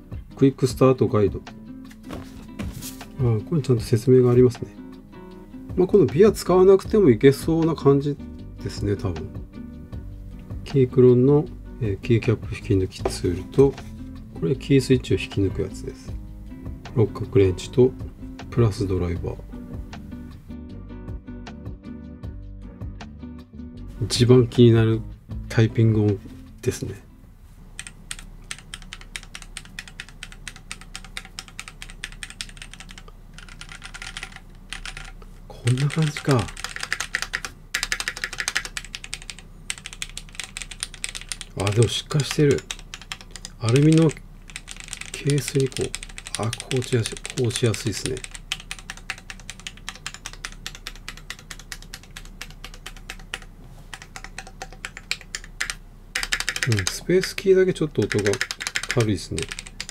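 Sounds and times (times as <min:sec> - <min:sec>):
mechanical keyboard key clacks: 0:27.8 - 0:57.0, 0:58.0 - 0:59.9.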